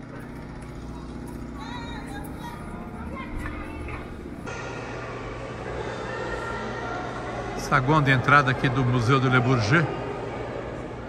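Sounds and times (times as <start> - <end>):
background hum: 0.0 - 8.7
indoor hall hum: 0.0 - 11.0
indistinct voices: 0.7 - 11.0.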